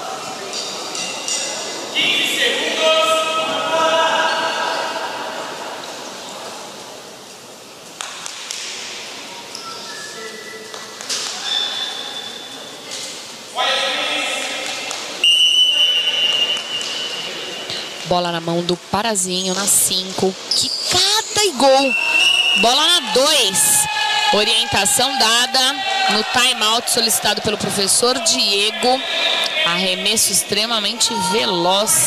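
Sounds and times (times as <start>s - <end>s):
referee's whistle: 15.2s - 17.4s, 21.8s - 23.0s
voices calling out: 20.5s - 32.0s.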